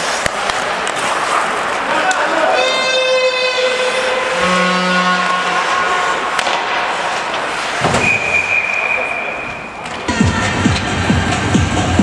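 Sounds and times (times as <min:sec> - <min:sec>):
skating on ice: 0:00.0 - 0:11.5.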